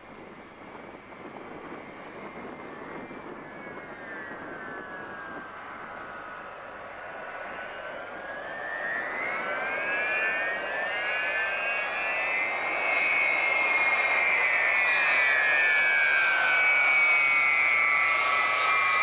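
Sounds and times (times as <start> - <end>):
jet engines whining: 0.0 - 19.0.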